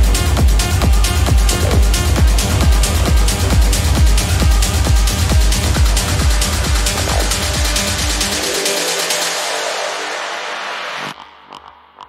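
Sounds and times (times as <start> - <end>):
techno kick-drum beat: 0.0 - 9.7.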